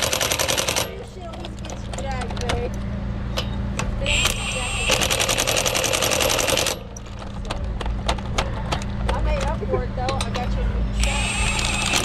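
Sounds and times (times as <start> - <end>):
impact wrench whining and hammering: 3.3 - 12.0.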